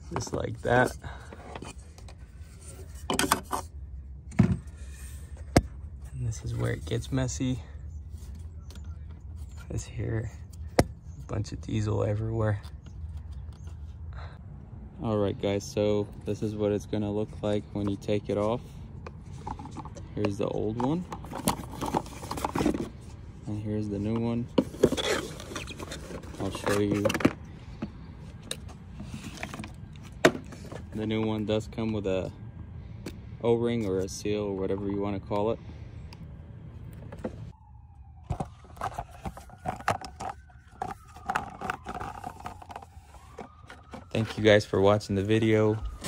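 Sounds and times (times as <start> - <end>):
cardboard box handled: 21.2 - 23.2, 24.0 - 27.4, 38.3 - 44.5.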